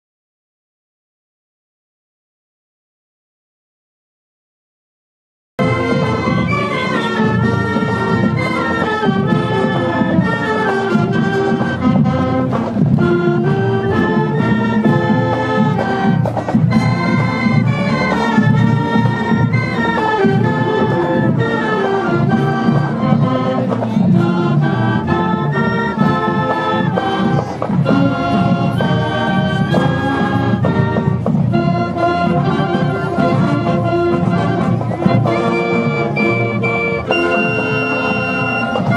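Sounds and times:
flutes and saxophones: 5.6s - 38.9s
marching band playing: 5.6s - 38.9s.

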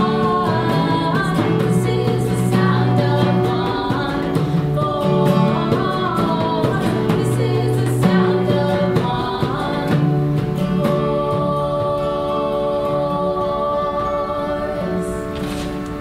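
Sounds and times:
strummed acoustic guitar: 0.0s - 16.0s
women singing together: 0.0s - 16.0s.

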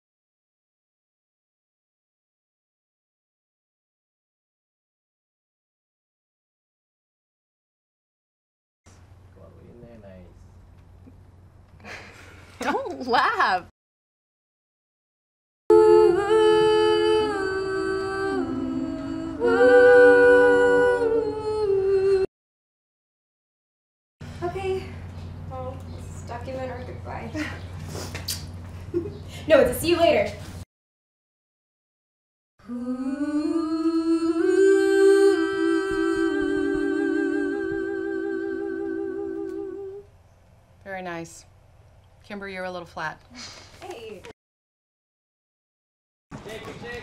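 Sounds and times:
voices humming in harmony: 15.7s - 22.3s, 32.6s - 40.1s.

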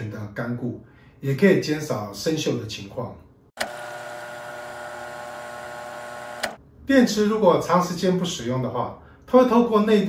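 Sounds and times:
electronic hum: 3.6s - 6.6s.

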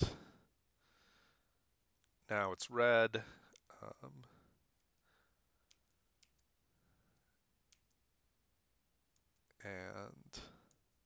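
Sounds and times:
man breathing softly: 0.0s - 1.7s, 3.2s - 5.8s, 6.7s - 7.4s.

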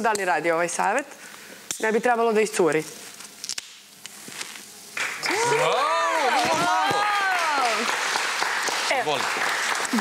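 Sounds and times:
drink can opening crack and hiss: 3.1s - 5.2s.

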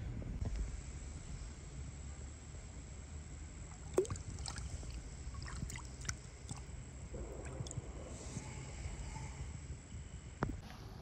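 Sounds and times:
water swishing and dripping: 3.7s - 6.7s.

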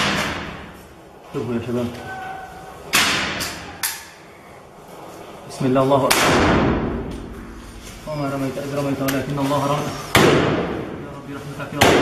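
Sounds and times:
rifle shot indoors: 6.1s - 7.3s, 10.1s - 10.9s.

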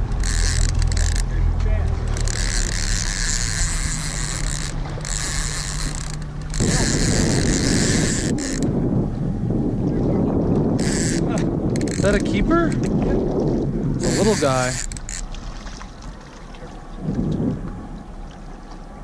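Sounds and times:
fishing reel gear whirring: 0.0s - 8.7s, 10.7s - 13.0s, 14.0s - 15.4s
low steady rumble: 0.0s - 14.4s, 15.0s - 19.0s.

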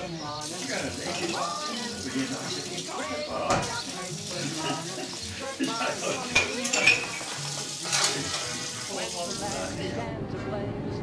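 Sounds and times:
soft background voices: 0.0s - 11.0s
crockery and cutlery clinking: 0.5s - 9.7s.

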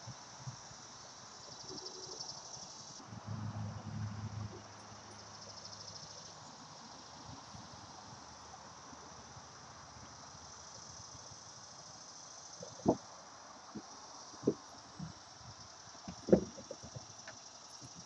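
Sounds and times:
insects chirping: 0.0s - 18.0s
dull thump: 16.0s - 17.1s.

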